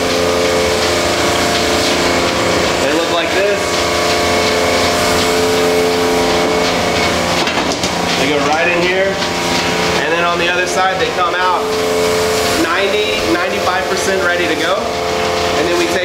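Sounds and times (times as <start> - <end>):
machine running with steady hum: 0.0 - 16.0.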